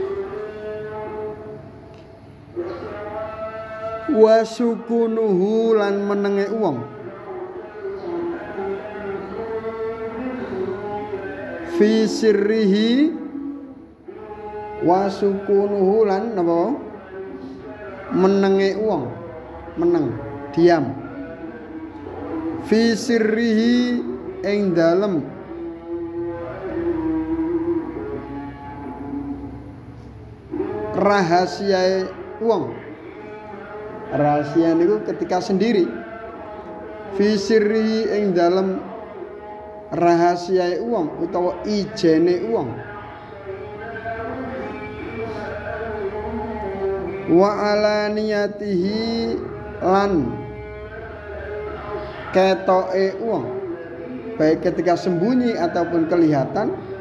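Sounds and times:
man chanting sung vowel: 0:00.0 - 0:57.0.

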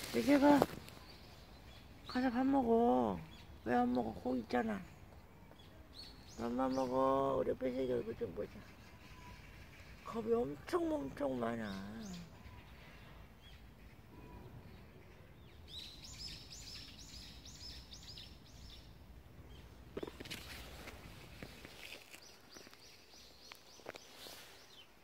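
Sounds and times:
bird singing: 0:00.0 - 0:21.1, 0:21.7 - 0:25.0.

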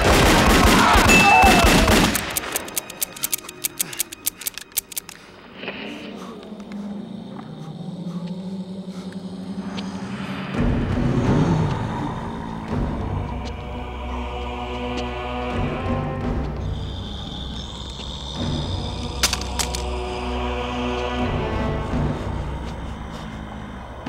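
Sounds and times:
ominous film music: 0:00.0 - 0:24.0.

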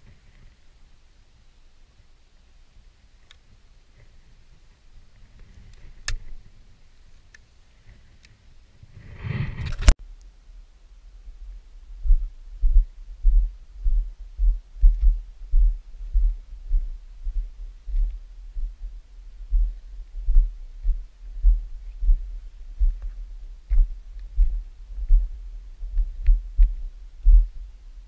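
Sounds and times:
rustle: 0:00.0 - 0:28.0
walking footsteps thudding: 0:19.5 - 0:27.6.

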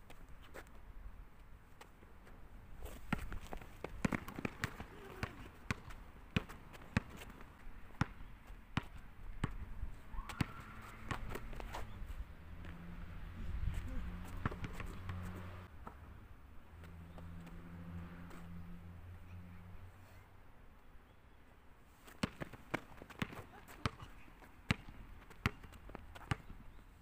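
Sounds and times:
basketball bouncing on hard court: 0:03.1 - 0:07.4, 0:08.0 - 0:09.6, 0:10.2 - 0:11.8, 0:14.3 - 0:15.2, 0:22.2 - 0:24.1, 0:24.7 - 0:26.6.

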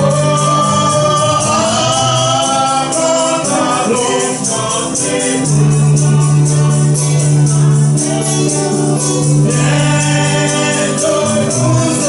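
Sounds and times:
gospel choir singing: 0:00.0 - 0:12.0
man singing into microphone: 0:00.0 - 0:12.0
tambourine beat: 0:00.0 - 0:12.0.

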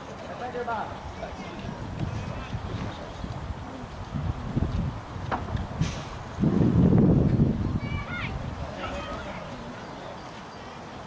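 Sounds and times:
wind rumbling on microphone: 0:00.8 - 0:09.7.

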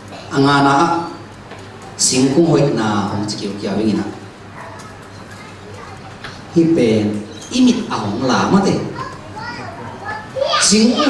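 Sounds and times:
faint child's voice: 0:04.5 - 0:06.5, 0:08.9 - 0:11.0.

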